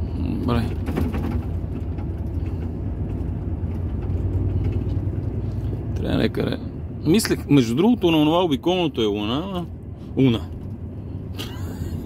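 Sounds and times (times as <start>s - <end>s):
lorry engine and tyres rumbling: 0.0s - 12.0s.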